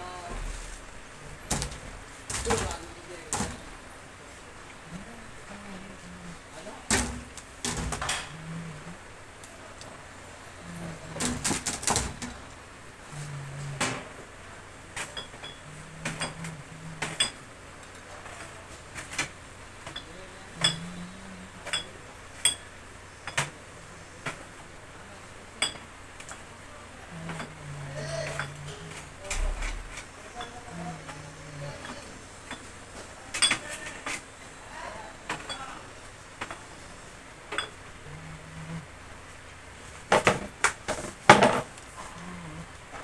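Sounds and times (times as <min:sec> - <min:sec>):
packaged goods clicking on shelves: 0:01.4 - 0:03.6, 0:11.1 - 0:12.4.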